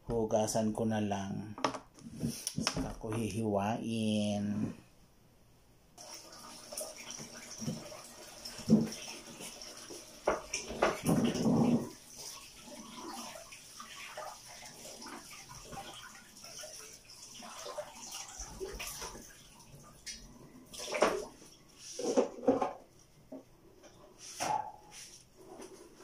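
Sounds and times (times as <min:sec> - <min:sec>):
water running into sink: 0:06.0 - 0:21.5.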